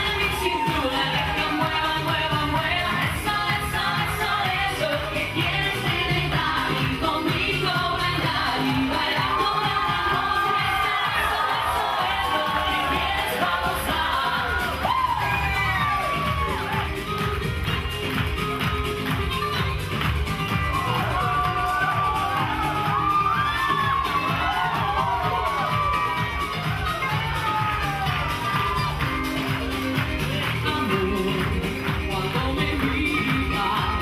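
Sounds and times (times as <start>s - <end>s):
crowd cheering and whooping: 0.0s - 3.1s, 7.6s - 30.7s, 32.9s - 34.0s
person singing: 0.0s - 17.0s, 27.1s - 34.0s
salsa band playing: 0.0s - 34.0s.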